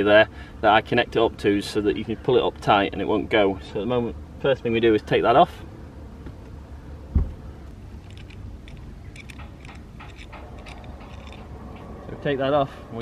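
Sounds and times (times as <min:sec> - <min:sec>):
steady low rumble: 0:00.0 - 0:13.0
rope and rigging fittings clicking: 0:08.0 - 0:11.9.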